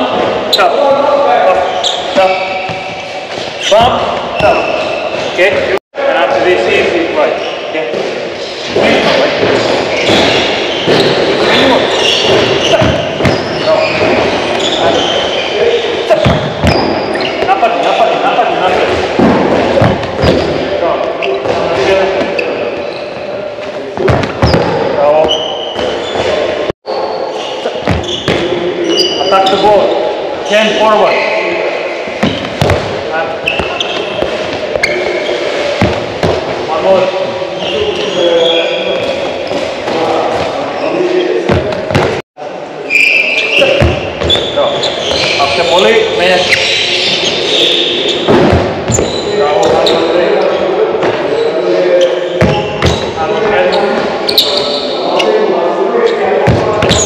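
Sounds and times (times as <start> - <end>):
voices echoing in hall: 0.0 - 57.0
balls bouncing on wooden floor: 10.0 - 15.0, 18.8 - 20.6, 27.8 - 28.5, 32.2 - 35.0, 35.8 - 36.6, 43.6 - 45.4.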